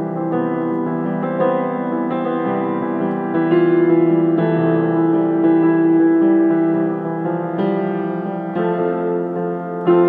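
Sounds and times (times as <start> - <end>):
piano chords: 0.0 - 10.0.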